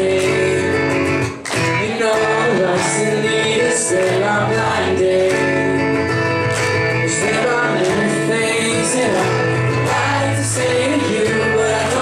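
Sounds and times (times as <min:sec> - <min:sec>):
person singing: 0:00.0 - 0:01.0, 0:01.7 - 0:06.0, 0:07.0 - 0:12.0
acoustic guitar strumming: 0:00.0 - 0:12.0.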